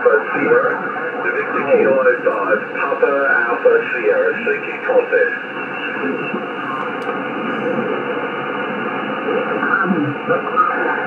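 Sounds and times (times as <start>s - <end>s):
faint garbled radio voices: 0.0s - 11.0s
radio band noise hiss: 0.0s - 11.0s.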